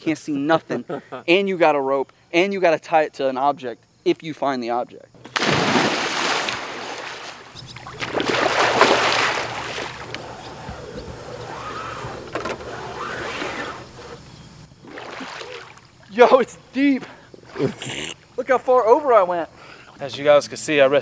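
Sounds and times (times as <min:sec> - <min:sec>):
water splashing from swimming: 0:05.3 - 0:10.7, 0:14.8 - 0:16.0.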